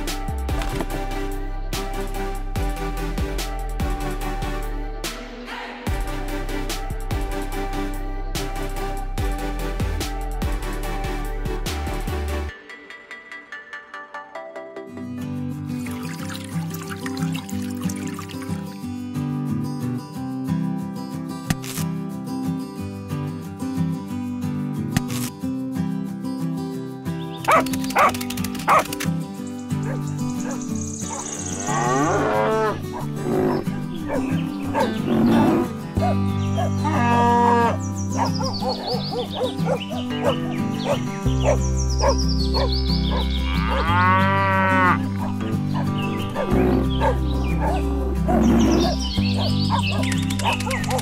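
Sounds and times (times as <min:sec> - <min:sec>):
background guitar music: 0:00.0 - 0:51.0
dog barking: 0:27.5 - 0:28.9, 0:29.8 - 0:31.4, 0:32.9 - 0:36.8, 0:38.1 - 0:43.3, 0:45.2 - 0:51.0
cattle mooing: 0:31.2 - 0:37.8, 0:43.1 - 0:49.0.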